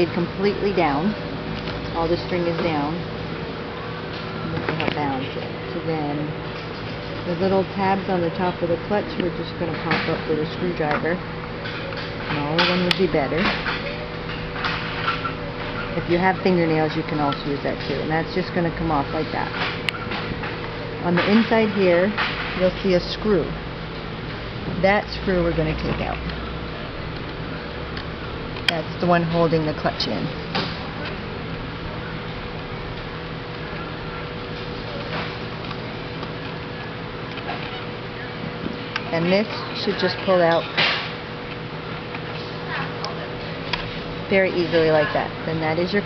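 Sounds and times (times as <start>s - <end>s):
faint hum: 0.0s - 46.0s.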